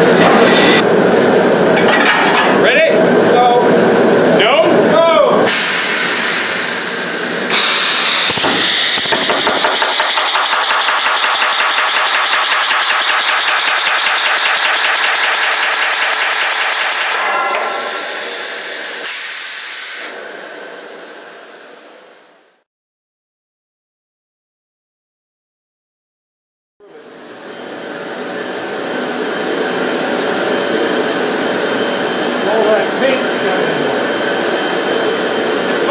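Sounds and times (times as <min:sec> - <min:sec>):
pneumatic riveter hammering: 0:07.5 - 0:18.3.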